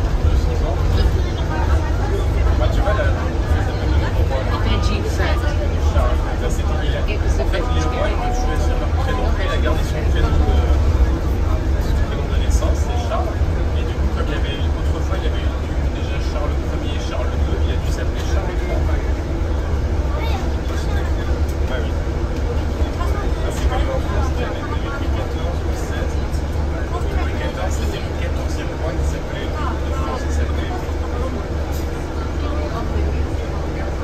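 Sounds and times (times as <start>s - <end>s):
bus engine and road rumble: 0.0s - 34.0s
indistinct voices: 0.0s - 34.0s.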